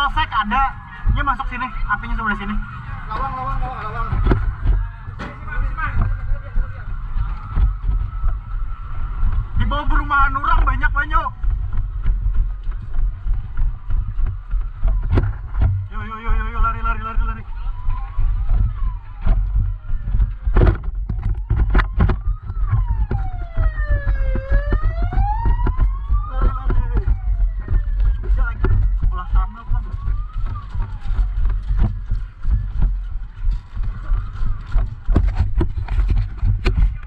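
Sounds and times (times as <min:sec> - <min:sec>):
emergency vehicle siren wailing: 0:00.0 - 0:37.0
heavy low rumble: 0:00.0 - 0:37.0
knocks from carried camera: 0:14.8 - 0:15.9.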